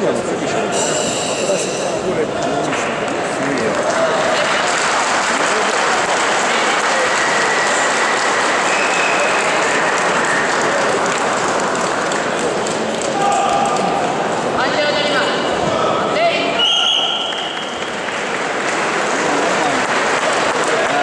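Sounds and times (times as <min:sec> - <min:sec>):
audience applauding: 0:03.0 - 0:14.3, 0:16.9 - 0:21.0
people shouting: 0:13.1 - 0:14.2.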